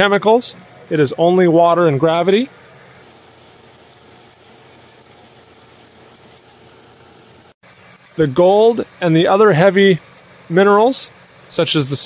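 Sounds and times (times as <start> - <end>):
shaker table mechanical hum: 0.0 - 12.0
water washing over deck: 3.0 - 8.1.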